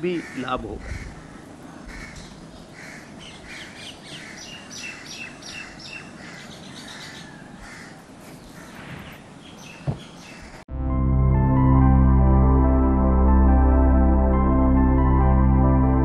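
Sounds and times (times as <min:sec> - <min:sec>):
birds calling: 0:00.0 - 0:10.7.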